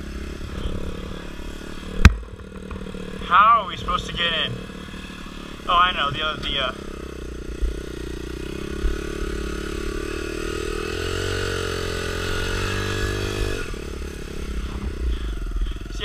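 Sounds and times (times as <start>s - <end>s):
dirt bike engine running: 0.0s - 16.0s.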